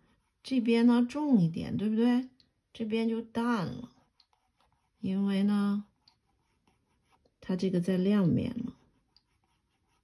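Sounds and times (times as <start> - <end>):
person's voice: 0.5 - 3.9, 5.0 - 5.9, 7.4 - 8.8.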